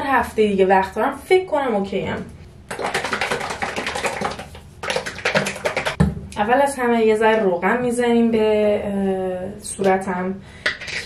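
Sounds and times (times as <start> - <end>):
plastic bottle rattling when shaken: 2.7 - 6.0.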